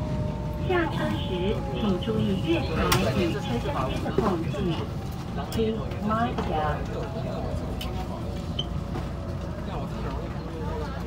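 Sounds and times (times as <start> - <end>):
passengers talking faintly: 0.0 - 11.0
train rumbling: 0.0 - 11.0.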